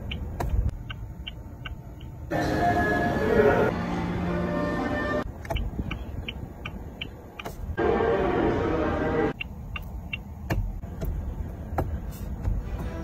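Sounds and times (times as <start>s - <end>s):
car turn signal ticking: 0.0s - 2.3s, 5.3s - 7.8s, 9.4s - 12.8s.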